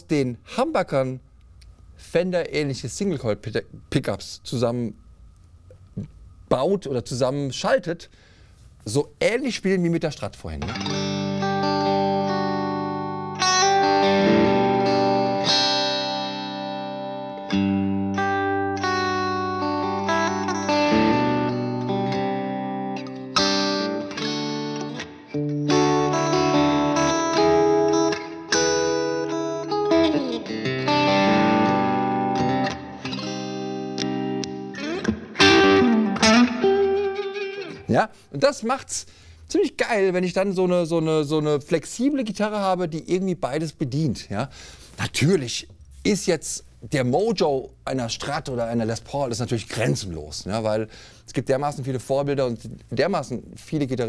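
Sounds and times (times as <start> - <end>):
electric guitar through amplifier: 10.6 - 37.9.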